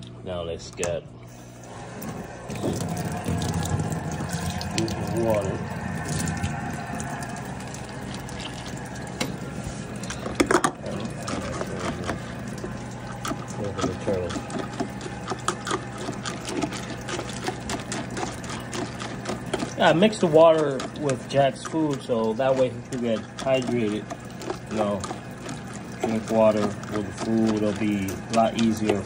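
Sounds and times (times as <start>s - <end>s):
tank filter running: 0.0s - 29.0s
water poured into steel bowl: 2.1s - 15.4s
kibble being stirred: 2.6s - 29.0s.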